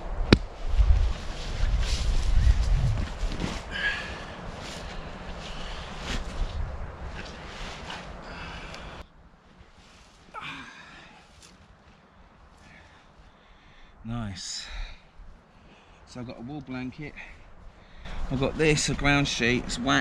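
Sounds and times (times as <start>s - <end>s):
wind gusting on microphone: 0.0s - 9.1s
tarp rustling and handling: 0.6s - 12.2s.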